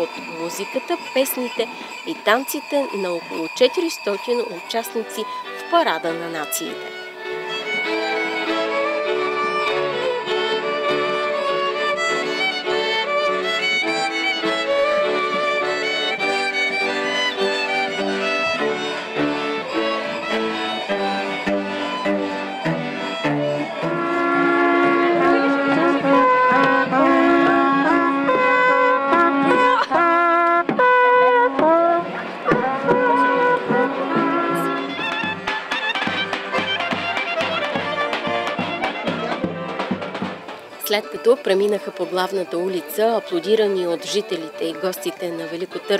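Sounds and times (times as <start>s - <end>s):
fiddle string band folk music: 0.0s - 45.9s.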